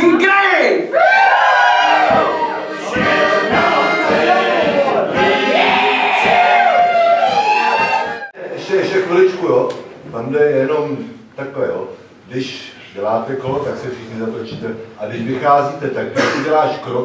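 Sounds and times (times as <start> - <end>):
voices singing together: 1.0 - 8.3
beat of low knocks: 2.0 - 8.1.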